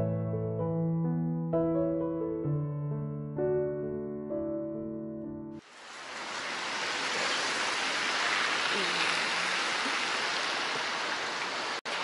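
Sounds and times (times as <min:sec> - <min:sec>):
piano music: 0:00.0 - 0:05.6
rain falling on wet pavement: 0:05.6 - 0:12.0.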